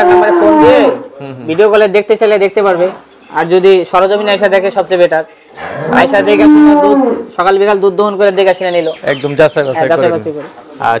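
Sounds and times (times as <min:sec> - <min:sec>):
cow mooing: 0:05.6 - 0:07.3.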